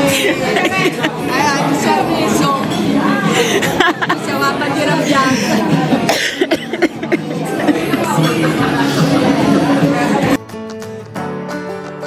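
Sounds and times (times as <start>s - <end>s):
people laughing: 0.0s - 2.4s, 3.0s - 10.3s
adults talking over one another: 0.0s - 10.4s.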